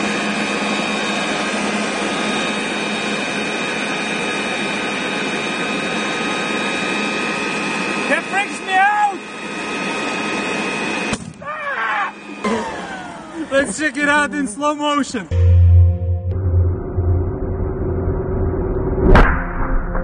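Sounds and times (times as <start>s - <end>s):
electric air blower whining: 0.0s - 11.2s, 11.9s - 13.8s
person calling out: 11.4s - 12.7s.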